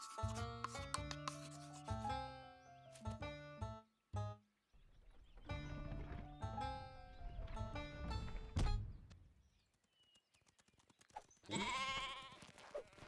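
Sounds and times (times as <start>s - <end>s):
sheep bleating: 11.5s - 12.4s.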